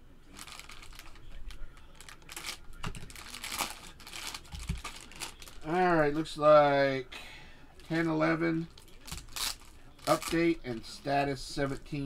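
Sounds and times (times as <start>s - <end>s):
foil wrappers crinkling and tearing: 0.3s - 6.2s, 8.6s - 10.6s.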